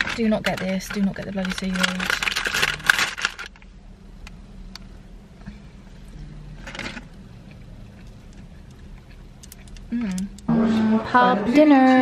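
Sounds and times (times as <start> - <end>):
plastic snack packet crinkle: 0.0 - 3.6.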